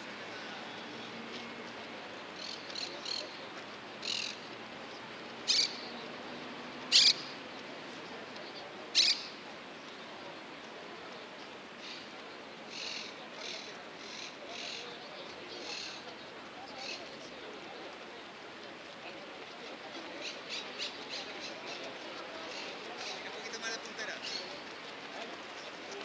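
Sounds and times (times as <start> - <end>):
birds chirping: 4.0 - 7.4
harsh bird calls: 6.9 - 7.3.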